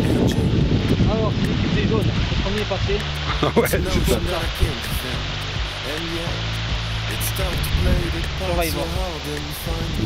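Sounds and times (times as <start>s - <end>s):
background music: 0.0s - 10.0s
river water rushing: 0.0s - 10.0s.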